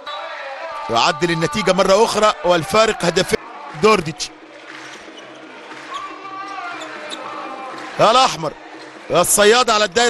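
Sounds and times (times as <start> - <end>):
crowd noise: 0.0 - 10.0
players moving on wooden court: 4.4 - 9.4.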